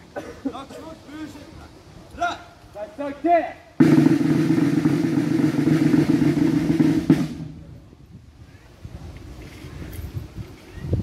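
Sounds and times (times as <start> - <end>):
snare drum roll: 3.8 - 7.6.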